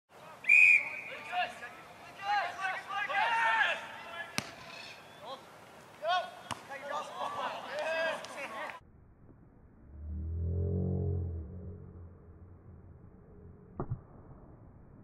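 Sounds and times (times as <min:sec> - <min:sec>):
whistle blast: 0:00.4 - 0:01.3
people shouting: 0:02.3 - 0:04.4.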